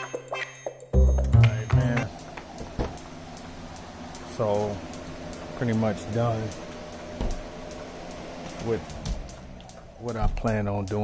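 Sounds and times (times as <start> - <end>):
low background hum: 1.0 - 11.0
man speaking syllable: 1.2 - 2.1.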